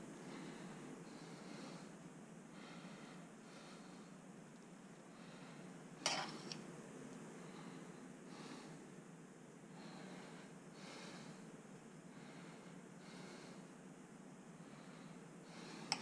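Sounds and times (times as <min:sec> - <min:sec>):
person breathing close: 0:00.1 - 0:04.3, 0:09.6 - 0:13.9, 0:14.6 - 0:16.0
spoon scooping sticky rice: 0:06.1 - 0:06.6.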